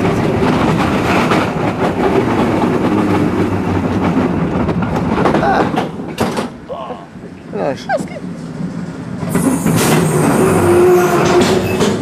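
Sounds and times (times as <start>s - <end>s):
roller coaster train rattling: 0.0s - 12.0s.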